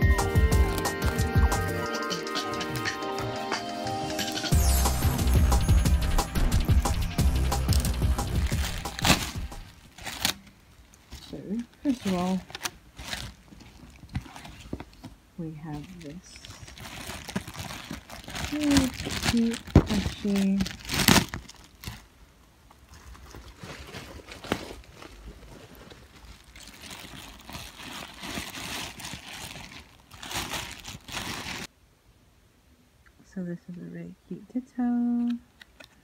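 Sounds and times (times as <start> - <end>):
bubble wrap crinkling: 0.0 - 1.7, 4.5 - 31.7
music: 0.0 - 9.7.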